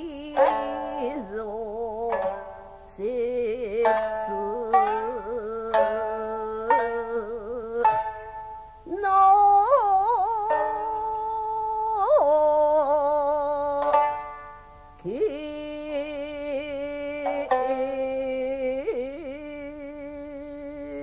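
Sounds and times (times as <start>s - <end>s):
plucked shamisen: 0.0s - 21.0s
woman singing sliding notes: 0.0s - 21.0s.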